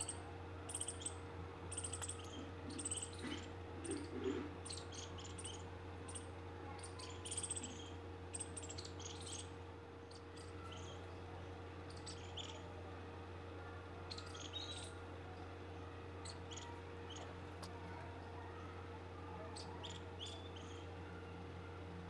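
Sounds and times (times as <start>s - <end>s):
small birds chirping: 0.0s - 13.0s, 13.7s - 21.5s
steady low hum: 0.0s - 22.0s.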